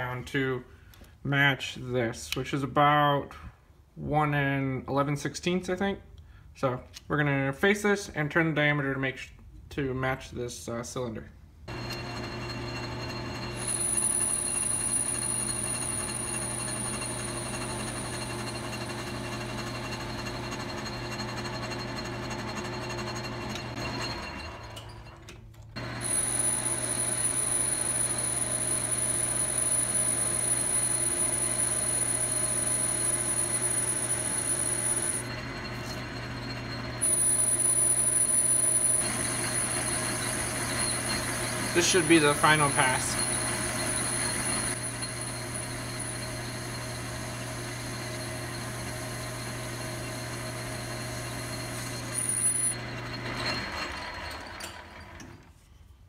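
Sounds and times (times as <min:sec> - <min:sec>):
metal lathe motor hum: 0:11.7 - 0:25.0, 0:25.8 - 0:55.0
high thin cutting whine: 0:25.8 - 0:50.0.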